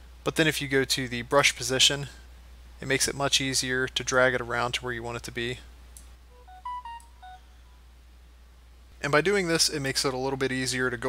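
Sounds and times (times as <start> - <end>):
low electrical hum: 0.0 - 11.0
faint electronic beeps: 6.3 - 7.8.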